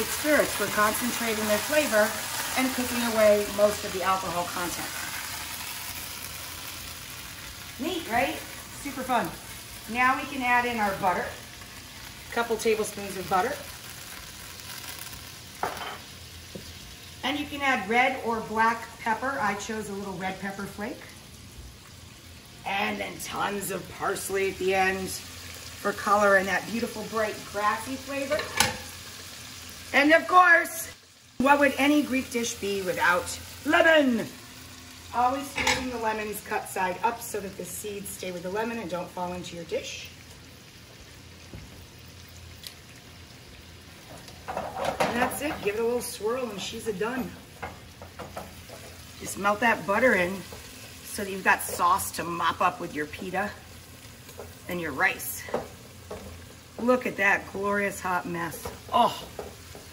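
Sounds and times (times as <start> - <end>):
shrimp sizzling in a skillet: 0.0 - 59.9.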